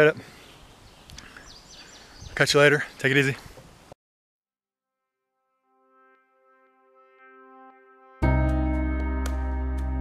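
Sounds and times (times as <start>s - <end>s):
birds chirping: 0.0s - 3.9s
outdoor background noise: 0.0s - 4.0s.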